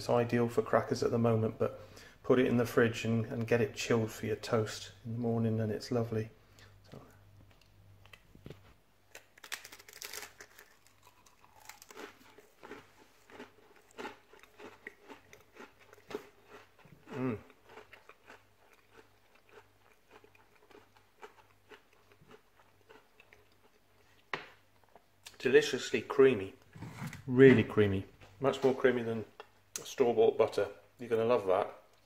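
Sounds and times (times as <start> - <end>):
person chewing crunchy cracker: 9.1 - 25.4.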